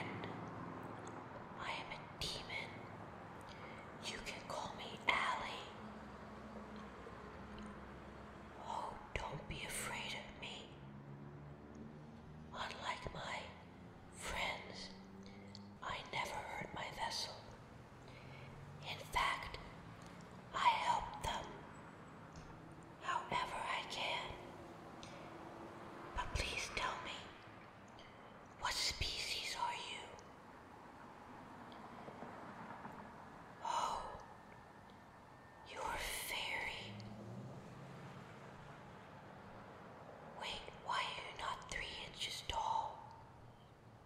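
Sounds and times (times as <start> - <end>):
person whispering: 0.0 - 6.0, 8.5 - 10.8, 12.5 - 21.8, 23.0 - 25.3, 26.1 - 27.4, 28.0 - 30.4, 33.6 - 34.3, 35.7 - 37.1, 40.4 - 43.3
faint low hum: 0.0 - 44.0.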